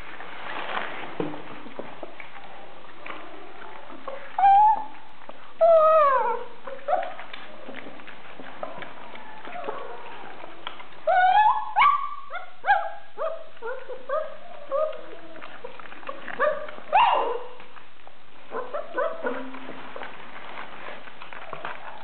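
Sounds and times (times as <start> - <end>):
puppies yelping and whining: 4.1 - 7.5, 8.7 - 17.6, 18.5 - 19.6.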